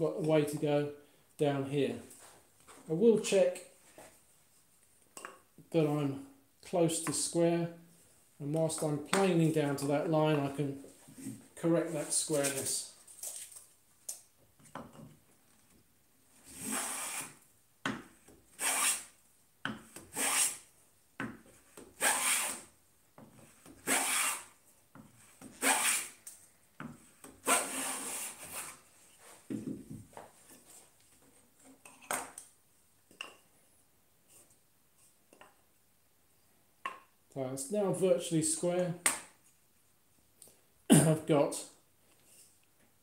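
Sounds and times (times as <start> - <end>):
bench plane cutting wood: 16.5 - 17.4, 18.6 - 19.1, 20.1 - 20.6, 22.0 - 22.7, 23.8 - 24.5, 25.4 - 26.2, 27.4 - 28.7.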